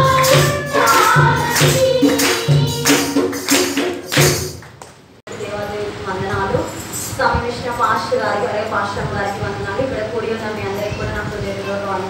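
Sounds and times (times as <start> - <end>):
quick percussion beat: 0.0 - 4.8.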